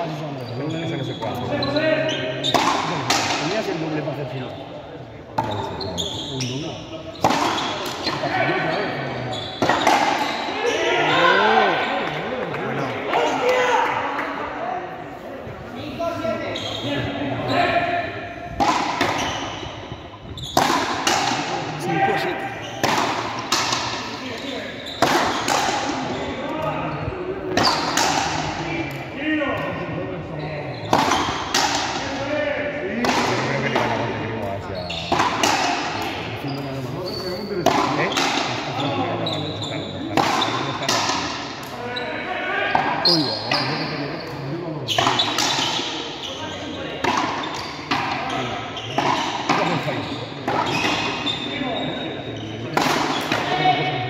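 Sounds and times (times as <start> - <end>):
people talking: 0.0 - 19.4, 20.5 - 54.0
ball hits echoing in hall: 2.4 - 4.0, 7.1 - 10.8, 17.6 - 29.7, 30.8 - 32.3, 32.9 - 34.5, 35.1 - 36.4, 37.2 - 39.2, 40.0 - 41.8, 46.9 - 51.9, 52.6 - 54.0.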